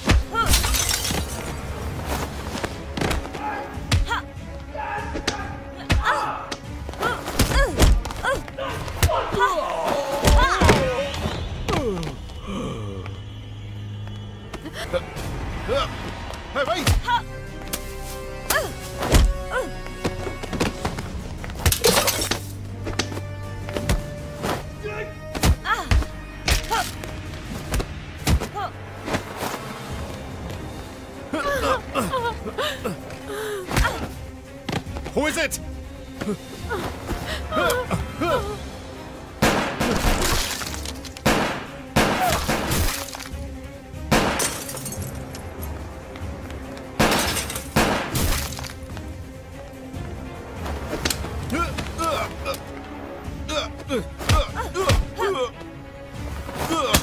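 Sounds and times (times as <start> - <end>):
film music score: 0.0 - 57.0
glass shattering: 0.5 - 1.5, 44.2 - 45.2, 47.0 - 48.7.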